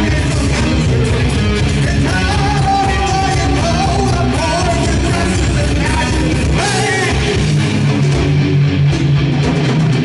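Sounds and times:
distorted electric guitars: 0:00.0 - 0:10.0
drums: 0:00.0 - 0:10.0.

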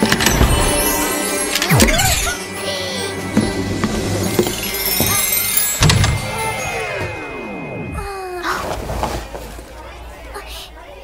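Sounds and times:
background soundtrack music: 0:00.0 - 0:09.2.

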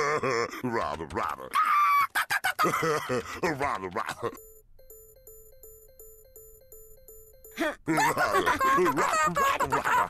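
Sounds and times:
person speaking: 0:03.1 - 0:04.4, 0:07.5 - 0:10.0
faint electronic beeping: 0:04.4 - 0:08.1.

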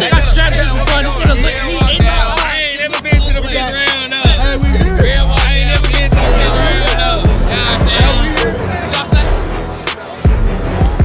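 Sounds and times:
hip hop beat with deep bass: 0:00.0 - 0:11.0
person rapping: 0:00.0 - 0:11.0.

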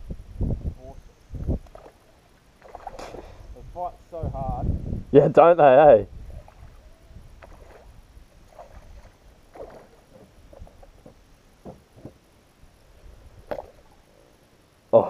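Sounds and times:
low steady rumble: 0:00.0 - 0:15.0.

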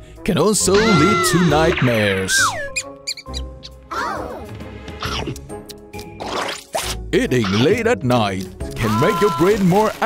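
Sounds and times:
light background music: 0:00.0 - 0:10.0
high cartoon squeaks: 0:02.3 - 0:03.7
squeaky chattering call: 0:02.3 - 0:03.8.

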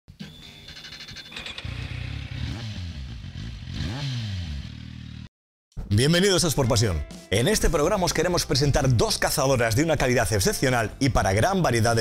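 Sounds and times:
motorcycle engine revving: 0:00.8 - 0:05.3.

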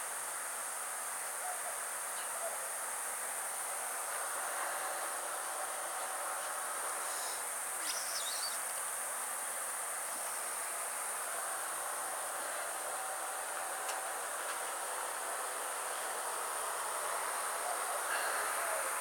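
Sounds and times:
background hiss: 0:00.0 - 0:19.0
insects buzzing: 0:00.0 - 0:19.0.

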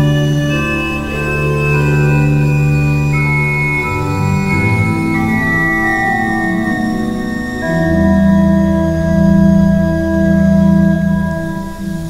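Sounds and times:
pipe organ sustained chord: 0:00.0 - 0:12.0.

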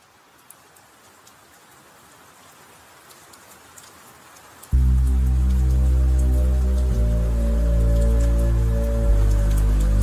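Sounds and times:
rain hiss: 0:00.0 - 0:10.0
raindrop ticks: 0:00.0 - 0:10.0
bass-heavy music with held chords: 0:04.8 - 0:10.0.

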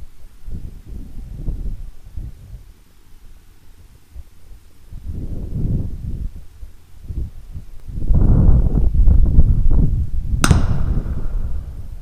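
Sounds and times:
wind rumble on microphone: 0:00.0 - 0:02.9, 0:03.8 - 0:12.0
gunshot with echo: 0:10.4 - 0:12.0.

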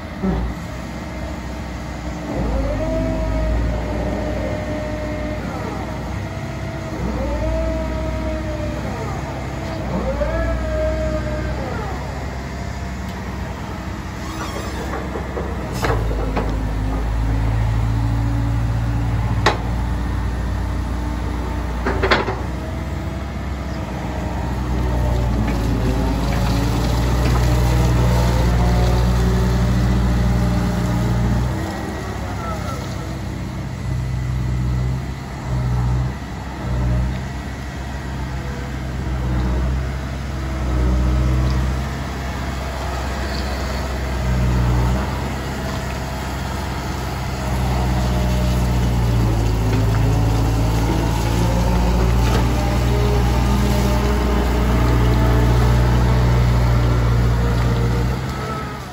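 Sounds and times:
diesel engine running: 0:00.0 - 0:58.9.

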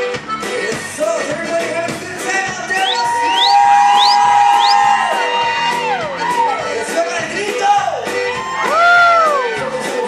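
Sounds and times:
accordion band playing: 0:00.0 - 0:10.0
rising whistles: 0:02.8 - 0:05.0.

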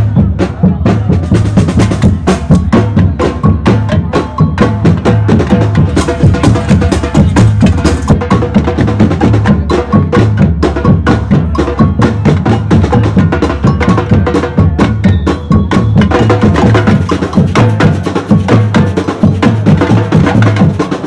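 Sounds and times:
drum troupe playing: 0:00.0 - 0:21.0.

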